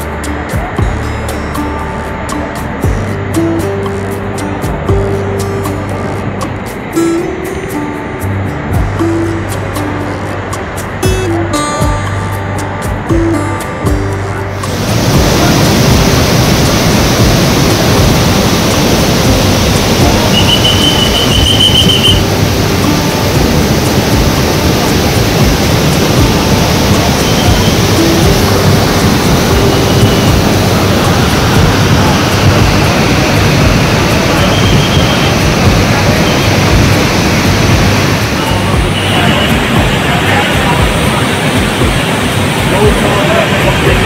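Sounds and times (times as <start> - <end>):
rushing river roar: 0.0 - 44.0.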